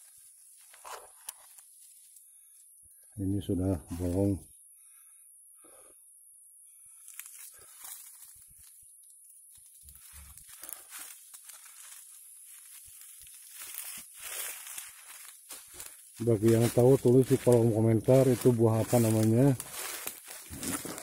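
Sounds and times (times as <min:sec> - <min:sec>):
dry leaves and twigs crackling: 0:00.0 - 0:02.8, 0:06.9 - 0:21.0.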